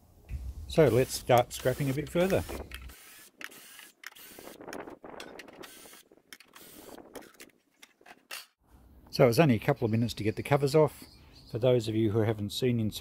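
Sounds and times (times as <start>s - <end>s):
cordless drill on sheet metal: 0.8s - 4.6s, 5.6s - 7.0s.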